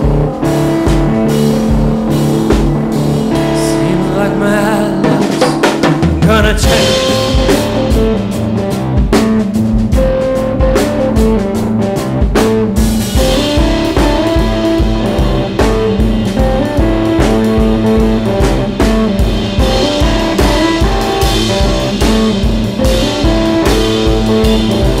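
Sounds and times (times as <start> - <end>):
cymbals: 0.0 - 25.0
drum kit beat: 0.0 - 25.0
electric guitar riff: 0.0 - 25.0.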